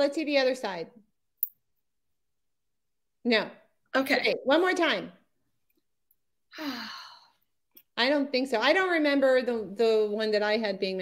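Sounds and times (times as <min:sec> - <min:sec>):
woman sighing: 0:06.5 - 0:07.4.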